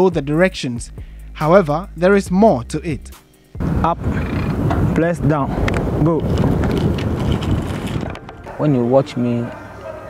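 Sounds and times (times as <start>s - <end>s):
wind buffeting microphone: 3.6s - 10.0s.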